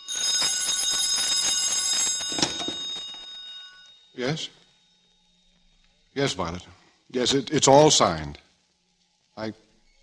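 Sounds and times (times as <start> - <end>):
telephone bell ringing: 0.0 - 4.5.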